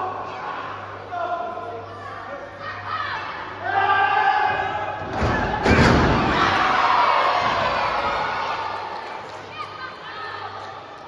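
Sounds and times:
crowd shouting: 2.6 - 8.9.

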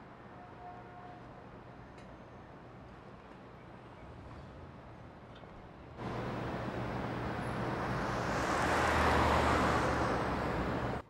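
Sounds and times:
car passing: 6.0 - 11.0.

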